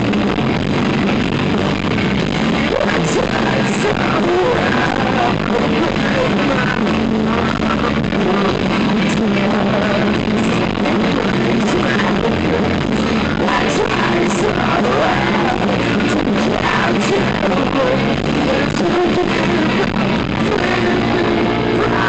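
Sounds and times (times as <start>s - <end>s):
bass guitar: 0.0s - 22.0s
drums: 0.0s - 22.0s
electric guitars: 0.0s - 22.0s.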